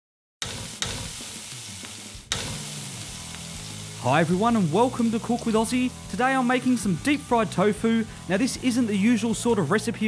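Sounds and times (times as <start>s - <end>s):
food sizzling in frying pan: 0.4s - 10.0s.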